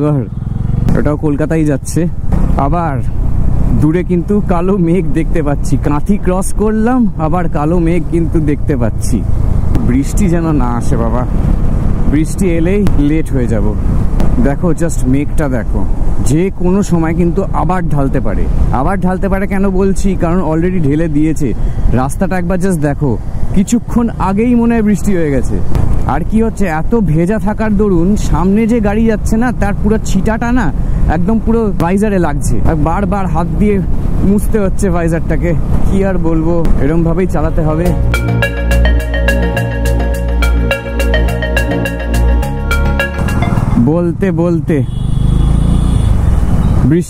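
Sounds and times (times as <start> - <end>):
motorcycle road and wind noise: 0.0 - 38.2, 43.2 - 47.0
person talking: 35.1 - 42.4
bus passing: 37.0 - 44.0, 45.0 - 46.8.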